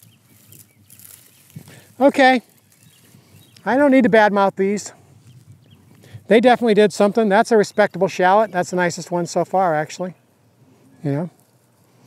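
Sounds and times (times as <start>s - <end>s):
plant pulled from soil: 0.0s - 3.7s.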